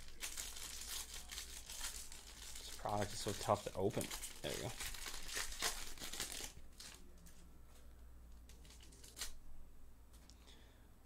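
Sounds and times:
foil wrapper crinkling and tearing: 0.0s - 7.1s, 8.5s - 9.4s
cards rustling and clicking: 8.4s - 9.4s.

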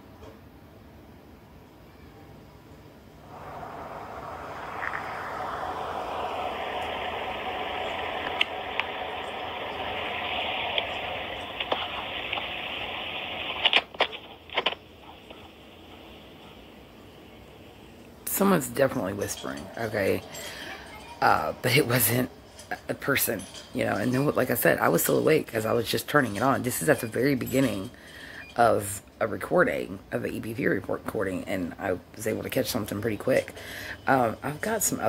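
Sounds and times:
steady hiss of room noise: 0.0s - 35.0s
sharp clicks: 7.7s - 15.6s.

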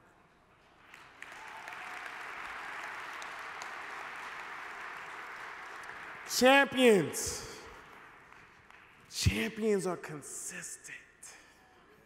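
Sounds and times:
audience applauding: 0.8s - 9.0s.

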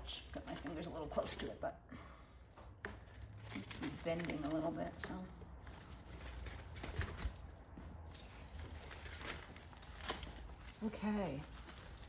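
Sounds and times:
leafy branches rustling: 3.3s - 12.0s.

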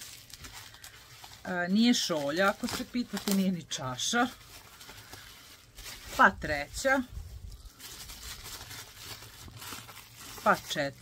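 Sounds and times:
bubble wrap rustling and crinkling: 0.0s - 11.0s.

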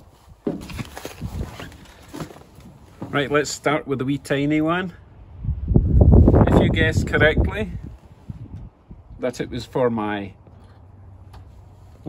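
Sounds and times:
shuffling and handling noises: 0.0s - 3.6s.

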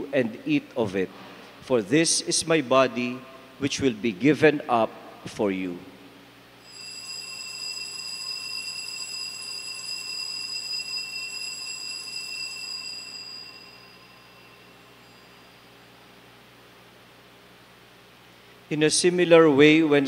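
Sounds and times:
altar bells ringing: 6.6s - 16.1s.

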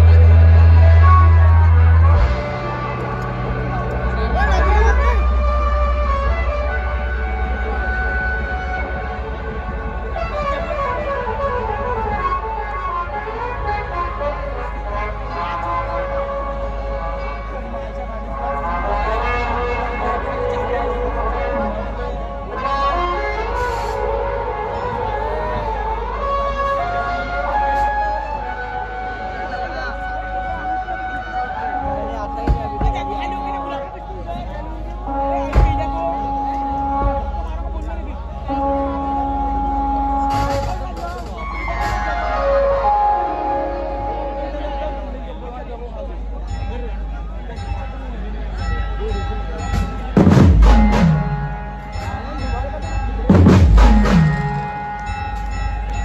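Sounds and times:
crowd voices: 0.0s - 56.0s
electronic procession music over loudspeakers: 0.0s - 56.0s
procession music over loudspeakers: 49.1s - 56.0s.

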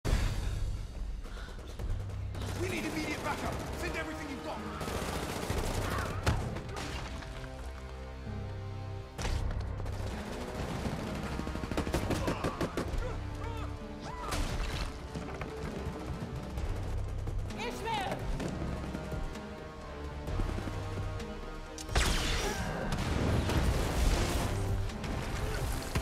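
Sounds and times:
rapid gunfire: 0.9s - 7.0s, 9.3s - 13.2s, 14.4s - 19.3s
people shouting: 4.6s - 6.4s, 12.0s - 14.5s.

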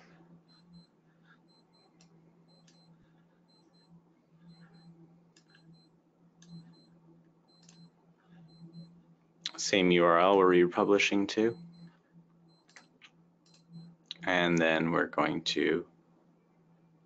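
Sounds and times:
faint low hum: 0.0s - 17.0s
faint paired ticks: 0.1s - 9.6s, 11.5s - 14.7s.

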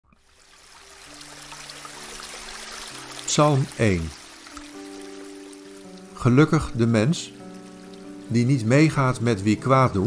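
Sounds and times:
stream running over rocks: 0.1s - 10.0s.

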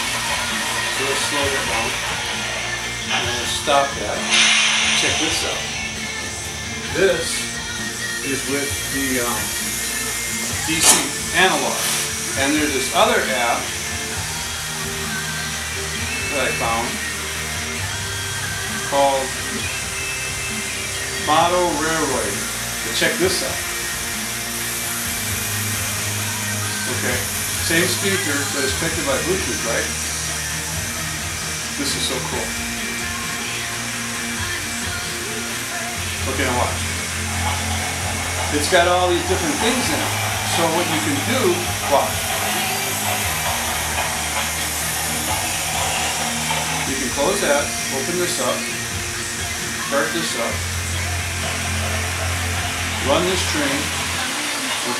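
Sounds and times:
locomotive running sound: 0.0s - 54.9s
model train motor hum: 0.0s - 54.9s
steady hiss: 0.0s - 54.9s
rolling wheel noise: 34.7s - 54.9s.

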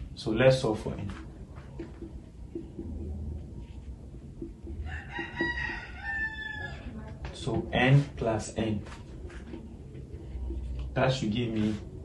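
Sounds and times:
marker tapping on whiteboard: 1.1s - 3.0s, 3.6s - 6.0s
rooster crowing: 4.8s - 7.0s.

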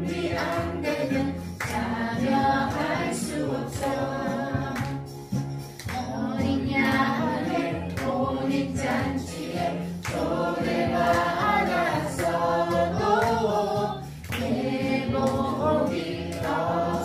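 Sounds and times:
instrumental accompaniment: 0.0s - 17.0s
voices singing together: 0.0s - 17.0s.

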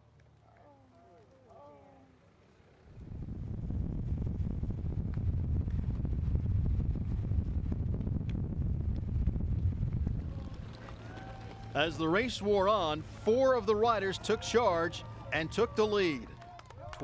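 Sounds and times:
wind rumbling on microphone: 2.7s - 11.8s.

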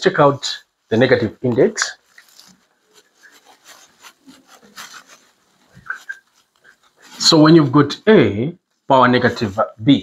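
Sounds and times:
marker pen on whiteboard: 1.2s - 8.0s.

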